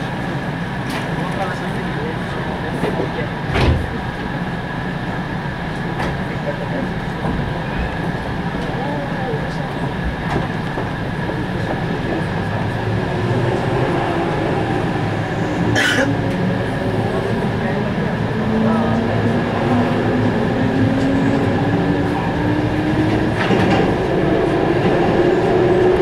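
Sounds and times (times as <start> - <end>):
passing train rush: 0.0 - 26.0
train cabin running noise: 0.0 - 26.0.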